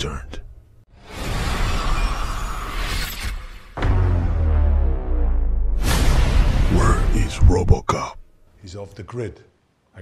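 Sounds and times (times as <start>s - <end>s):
music: 3.8s - 7.5s
deep bass hit: 3.8s - 7.8s.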